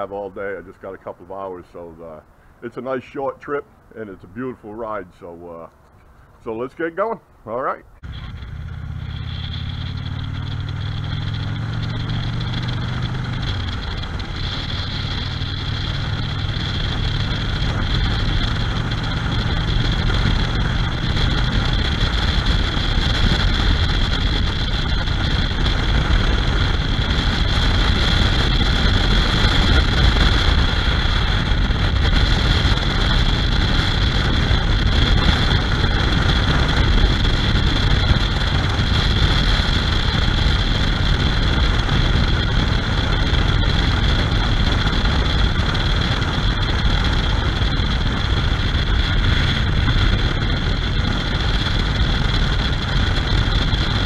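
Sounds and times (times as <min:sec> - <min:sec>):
motorcycle engine drone: 0:00.0 - 0:06.8, 0:07.5 - 0:54.0
wind and road noise: 0:00.0 - 0:54.0.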